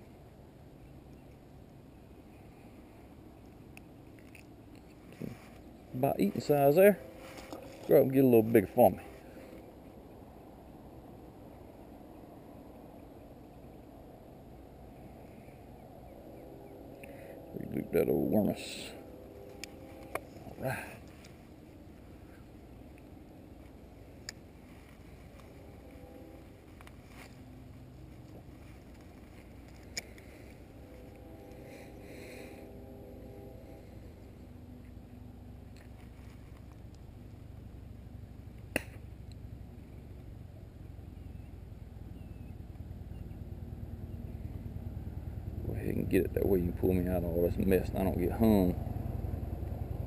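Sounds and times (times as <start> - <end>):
low wind rumble: 0.0 - 50.0.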